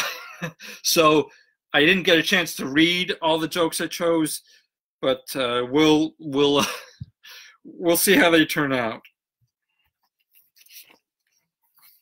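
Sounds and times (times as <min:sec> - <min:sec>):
paper sheets rustling: 0:10.0 - 0:12.0.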